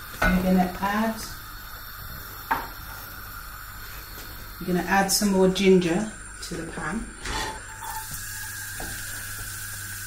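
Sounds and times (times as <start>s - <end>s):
kitchen background noise: 0.0s - 10.0s.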